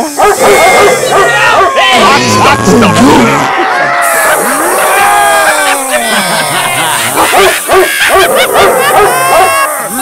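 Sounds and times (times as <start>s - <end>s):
high yelping calls: 0.0s - 2.2s.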